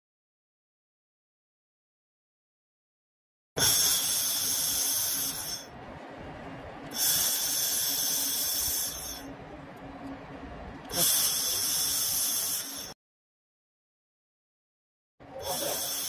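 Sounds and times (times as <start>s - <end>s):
laser welder hissing: 3.6s - 5.7s, 6.9s - 9.3s, 10.9s - 13.0s, 15.4s - 16.0s
low hum: 3.6s - 13.0s.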